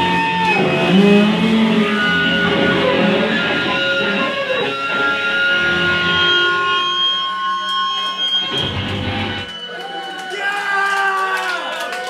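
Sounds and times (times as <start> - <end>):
ringing electric guitar tones: 0.0 - 10.3.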